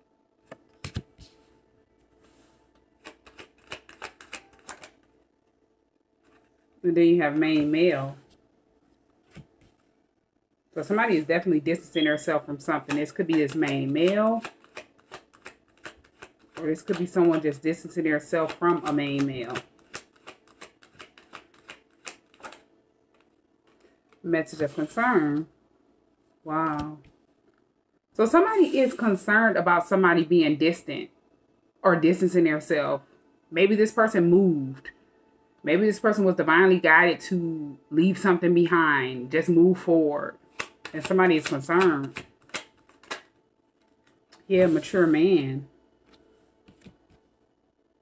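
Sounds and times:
cards being shuffled: 0.5 - 1.6, 2.2 - 5.1, 6.2 - 6.6, 9.2 - 9.9, 12.6 - 25.4, 40.5 - 45.2, 46.0 - 47.2
sharp card snaps: 40.5 - 43.3.

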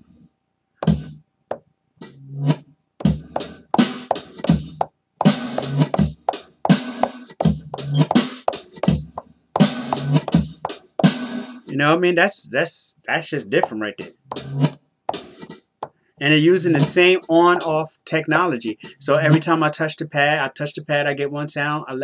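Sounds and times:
sampled drum beat: 0.8 - 1.1, 3.0 - 11.3, 13.5 - 14.5, 15.1 - 15.4, 16.6 - 17.7
reversed hi-hat: 9.6 - 11.2.

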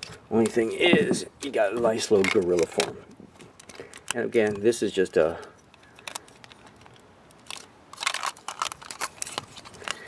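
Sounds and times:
plastic toy parts clicking: 2.2 - 2.9, 5.7 - 10.0.

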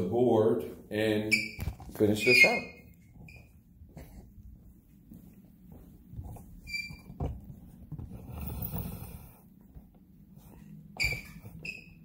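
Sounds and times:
brief high squeaks: 1.3 - 3.5
footsteps: 1.5 - 11.6.

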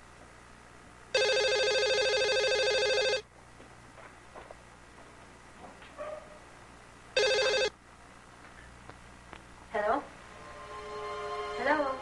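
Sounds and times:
telephone ringing: 1.1 - 3.2, 7.2 - 7.8.

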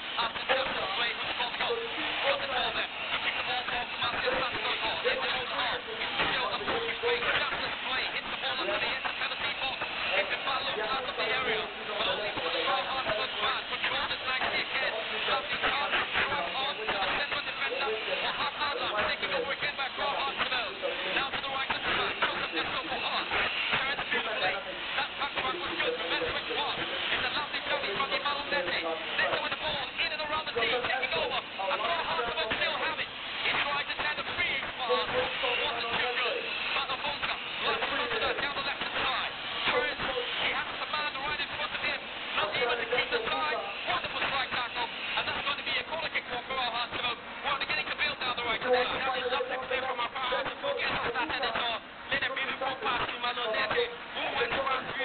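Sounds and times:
stadium crowd talking and chanting: 0.0 - 55.0.

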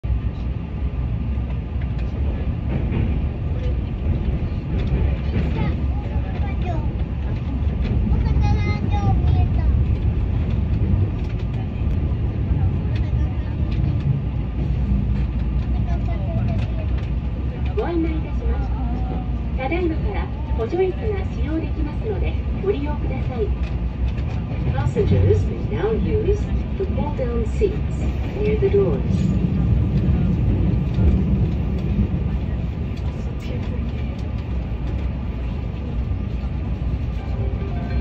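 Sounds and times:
electric train rumbling: 0.0 - 38.0
faint voices: 0.2 - 38.0.

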